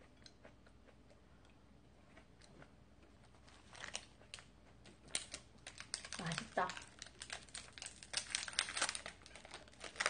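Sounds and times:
plastic wrapper crinkling: 3.4s - 4.4s, 5.1s - 10.0s.

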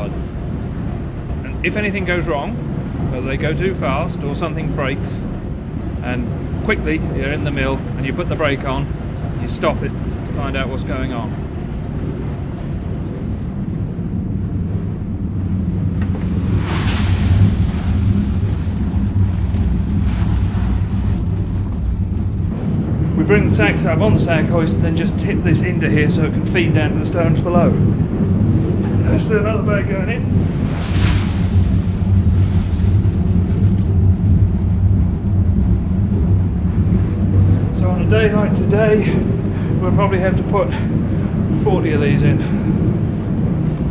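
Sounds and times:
rushing swell of noise: 0.0s - 43.9s.

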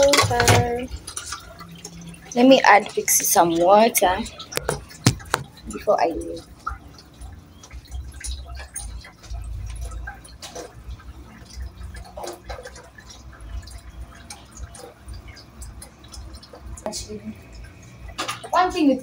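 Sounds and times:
small drips and clicks: 0.0s - 19.0s
water pouring into bowl: 0.0s - 19.0s.

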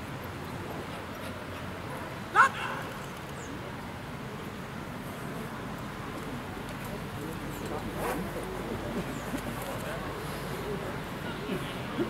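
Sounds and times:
murmur of spectators: 0.0s - 12.0s.

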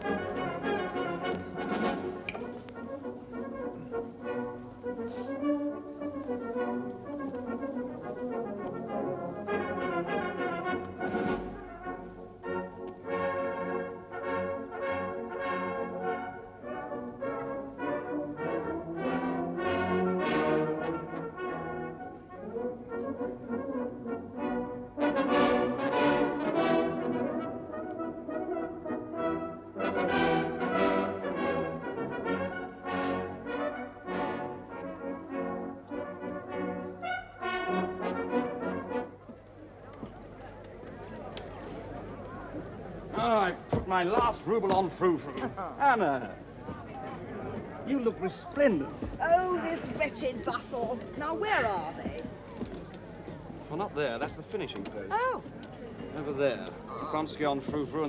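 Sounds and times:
brass music: 0.0s - 39.2s.

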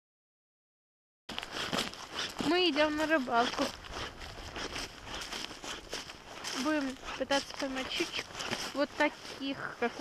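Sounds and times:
footsteps crunching dry grass: 1.3s - 10.0s.

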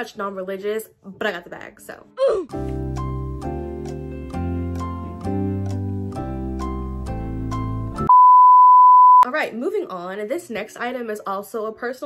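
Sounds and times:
light plucked background music: 0.0s - 8.1s.

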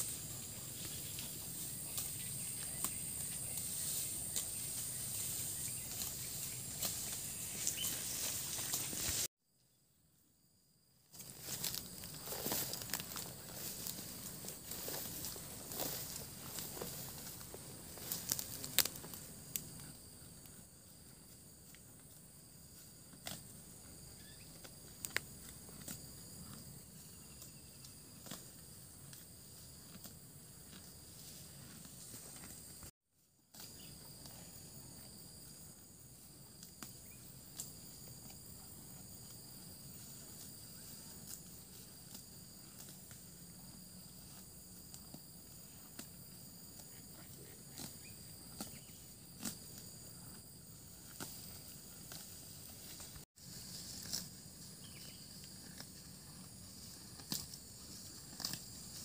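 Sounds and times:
grass being torn off: 11.1s - 19.6s.

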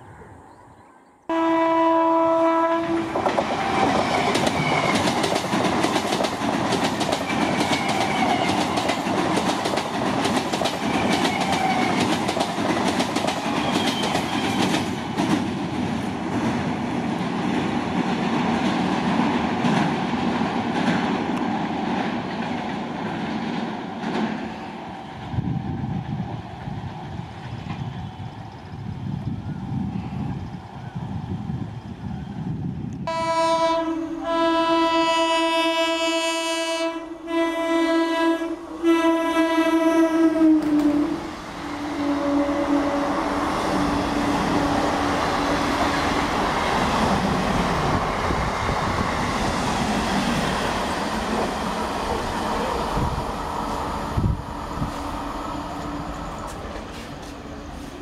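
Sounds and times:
train rumbling over bridge: 0.0s - 58.0s
train horn blast: 1.3s - 3.2s, 33.0s - 45.6s.

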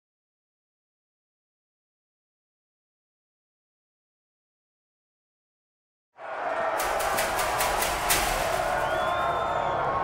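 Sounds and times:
crowd cheering and shouting: 6.2s - 10.0s
sharp cracks: 6.8s - 9.4s.

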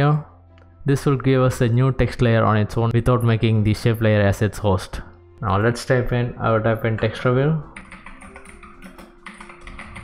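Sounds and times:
soft background music: 0.0s - 10.0s
computer keyboard typing: 7.7s - 10.0s.

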